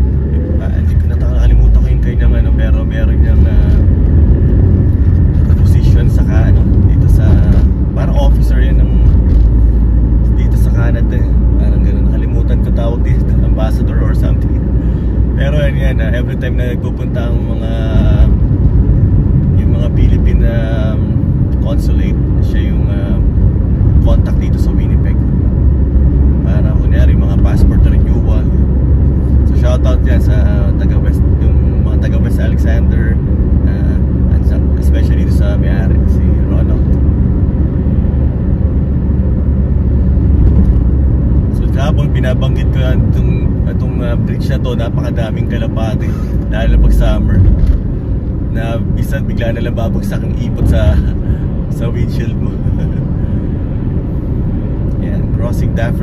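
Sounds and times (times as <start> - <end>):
car road and engine rumble: 0.0 - 56.0.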